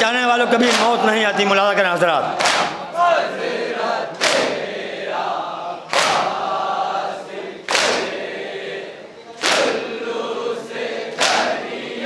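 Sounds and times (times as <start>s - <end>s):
group chanting in chorus: 0.2s - 12.0s
group chest-beating strikes: 0.6s - 1.0s, 2.3s - 2.9s, 4.1s - 4.7s, 5.9s - 6.4s, 7.7s - 8.2s, 9.4s - 9.9s, 11.1s - 11.6s.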